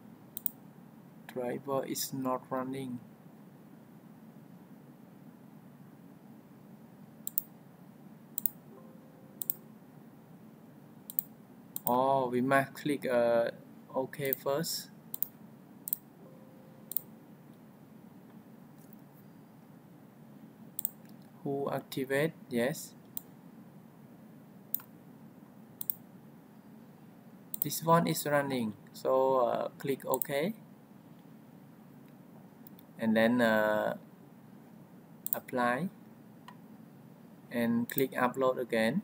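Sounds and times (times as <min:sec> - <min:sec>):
faint background hiss: 0:00.0 - 0:39.0
faint low hum: 0:00.0 - 0:39.0
computer mouse clicks: 0:00.4 - 0:00.6, 0:07.2 - 0:07.5, 0:08.4 - 0:08.6, 0:09.4 - 0:09.6, 0:11.1 - 0:11.9, 0:15.1 - 0:16.0, 0:16.9 - 0:17.1, 0:20.8 - 0:21.3, 0:24.7 - 0:24.9, 0:25.8 - 0:26.0, 0:27.5 - 0:27.7.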